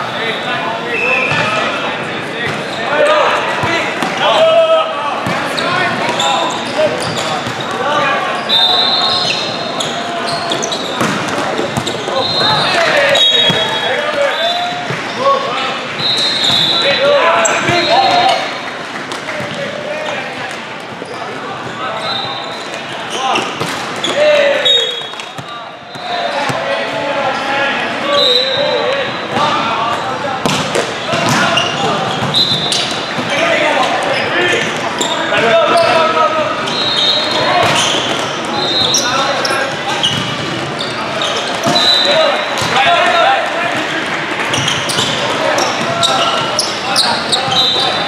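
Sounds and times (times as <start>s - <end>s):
voices calling and chattering: 0.0s - 48.0s
sneakers squeaking on court: 5.2s - 15.2s, 16.0s - 18.6s, 20.9s - 26.6s, 30.4s - 33.4s, 34.0s - 42.8s, 43.7s - 48.0s.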